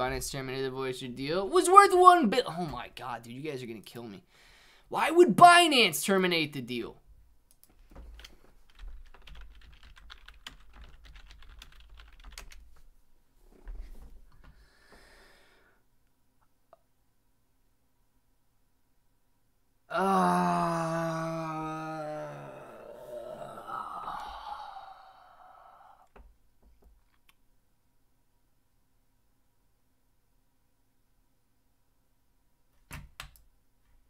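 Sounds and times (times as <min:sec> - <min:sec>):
typing on computer keyboard: 0:07.6 - 0:12.7
man sighing: 0:19.9 - 0:26.2.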